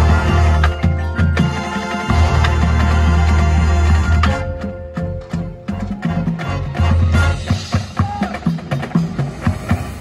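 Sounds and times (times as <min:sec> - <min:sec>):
drum and percussion hits: 0:00.0 - 0:10.0
marching band music: 0:00.0 - 0:10.0.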